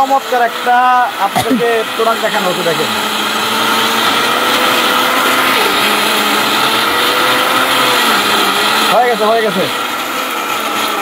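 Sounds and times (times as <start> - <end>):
mixer grinder running: 0.0 - 11.0.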